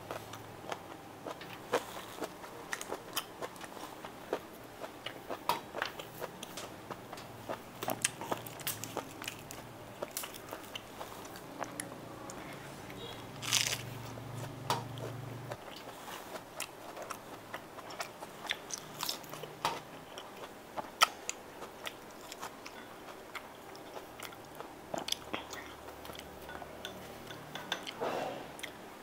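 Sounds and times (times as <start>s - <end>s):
person chewing crunchy food: 0.0s - 26.8s.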